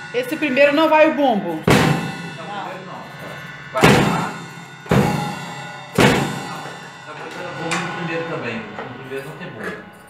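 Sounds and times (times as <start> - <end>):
drum and cymbal hits: 0.0 - 10.0.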